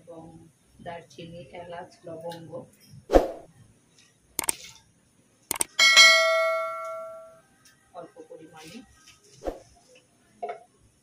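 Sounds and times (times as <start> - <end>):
notification bell chime: 5.8 - 7.4.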